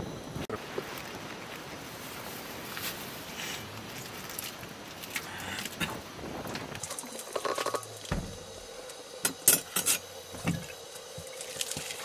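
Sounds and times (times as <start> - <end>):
mugs and dishes clinking: 7.3 - 7.9, 9.2 - 10.7.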